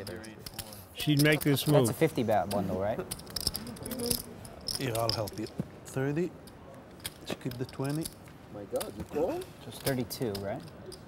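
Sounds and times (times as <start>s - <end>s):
poker chips clicking together: 0.0s - 2.1s, 3.1s - 5.5s.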